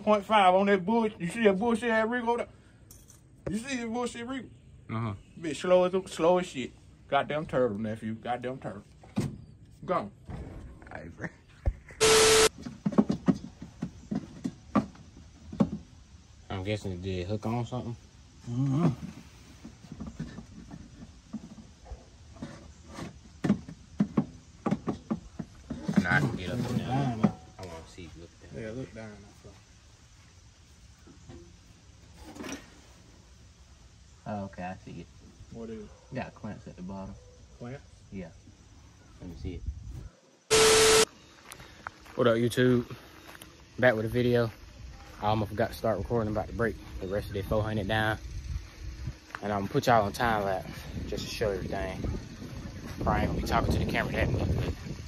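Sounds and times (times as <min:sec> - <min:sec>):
steady beep tone: 0:12.0 - 0:12.5, 0:40.5 - 0:41.1
tv static burst: 0:12.0 - 0:12.5, 0:40.5 - 0:41.1.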